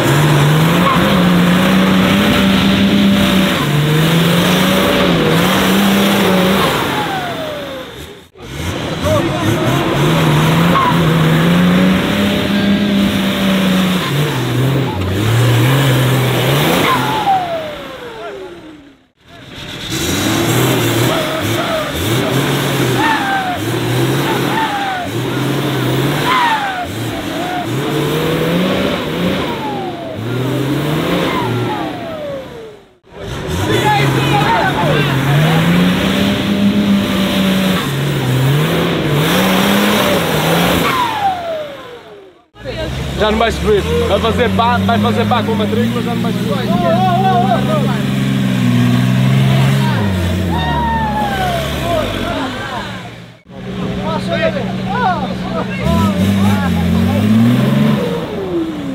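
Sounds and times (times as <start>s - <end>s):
diesel engine revving hard: 0.0s - 58.9s.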